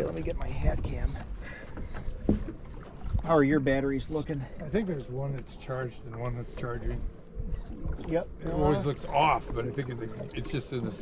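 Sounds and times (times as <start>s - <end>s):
boat engine rumble: 0.0s - 11.0s.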